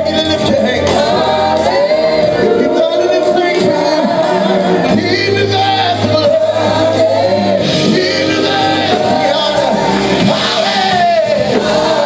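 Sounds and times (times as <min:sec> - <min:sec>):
gospel singing voices: 0:00.0 - 0:12.0
low bass keyboard: 0:00.0 - 0:12.0.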